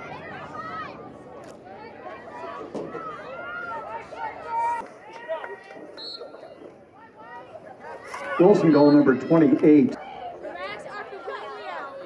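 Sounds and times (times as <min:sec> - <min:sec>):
spectators talking indistinctly: 0:00.0 - 0:12.0.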